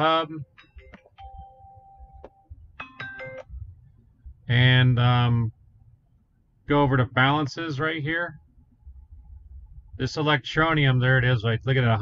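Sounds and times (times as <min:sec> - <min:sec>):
electronic chime tones: 0:00.6 - 0:03.4
low rumble: 0:01.2 - 0:02.8, 0:03.4 - 0:07.4, 0:08.1 - 0:12.0.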